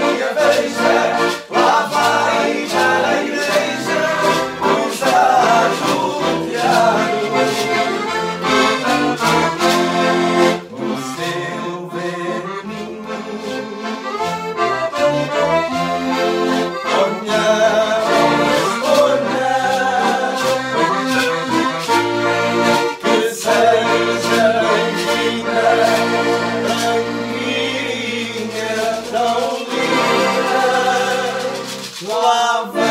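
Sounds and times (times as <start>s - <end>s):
shakers rhythm: 0.0s - 11.5s, 14.0s - 32.9s
people singing along: 0.0s - 13.8s, 16.8s - 21.2s, 22.8s - 32.9s
accordions playing folk dance: 0.0s - 32.9s.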